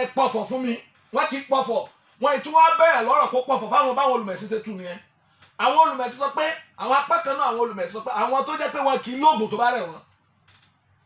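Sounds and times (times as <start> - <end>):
man speaking into a microphone: 0.0 - 10.1.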